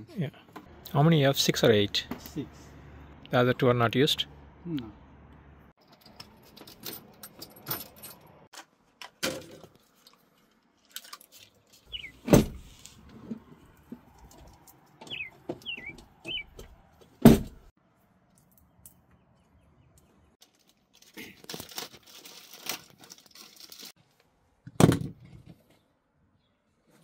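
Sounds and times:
tools and wires clicking and rattling: 5.8s - 11.9s, 13.8s - 17.1s.

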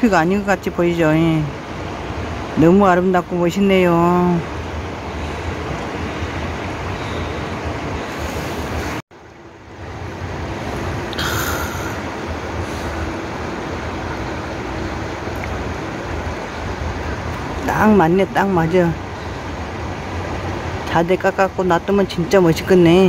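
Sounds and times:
steady rushing noise: 0.0s - 23.0s.

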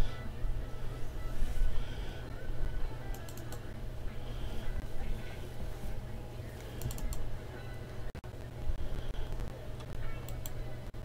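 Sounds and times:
light clicks: 6.7s - 7.2s.

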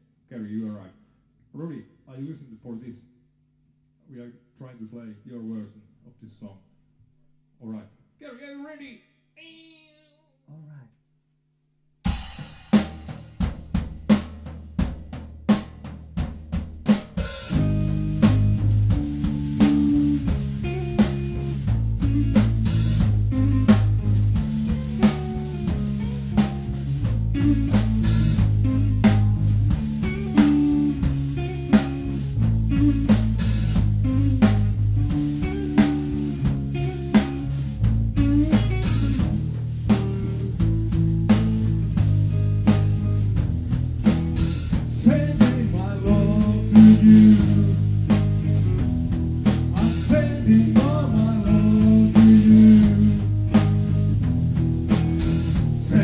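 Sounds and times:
drum kit: 12.0s - 56.0s
electric bass: 12.1s - 56.0s
electric guitar: 17.5s - 56.0s.

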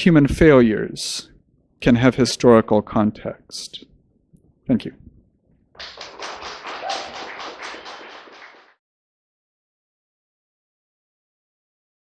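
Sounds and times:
small audience applauding: 5.8s - 8.8s.

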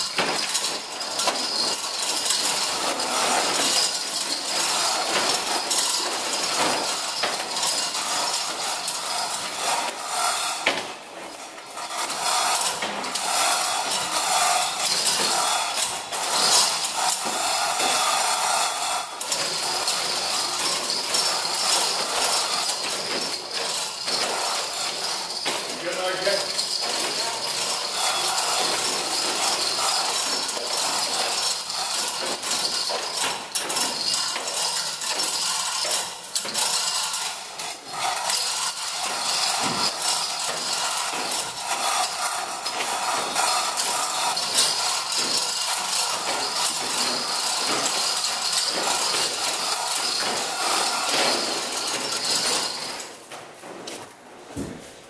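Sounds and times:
chain hoist chain rattling: 0.0s - 53.4s.

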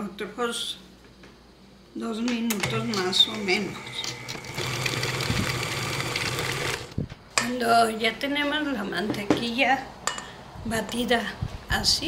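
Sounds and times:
stand mixer motor hum: 3.3s - 7.0s.

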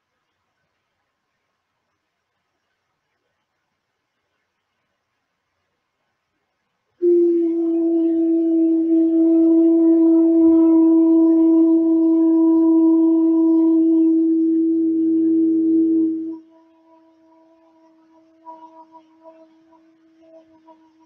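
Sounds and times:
woman singing a long tone: 7.0s - 21.0s.

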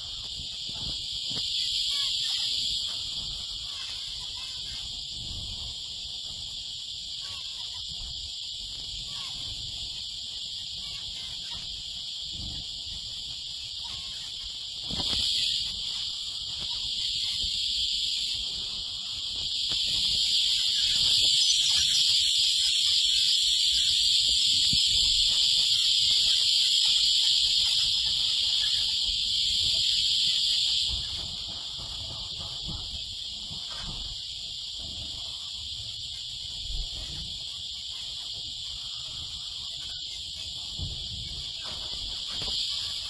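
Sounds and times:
finches twittering: 13.8s - 35.5s.

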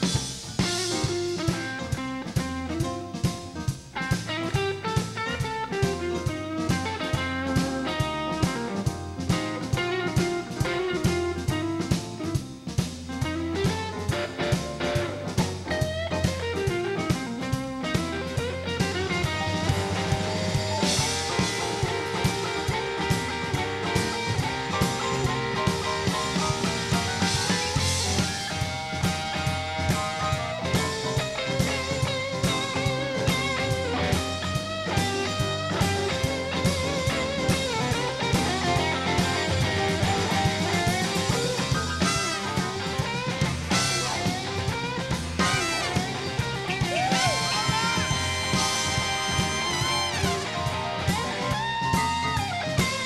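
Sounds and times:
bending electric guitar lines: 0.0s - 53.0s
blues-rock band playing: 0.0s - 53.0s.

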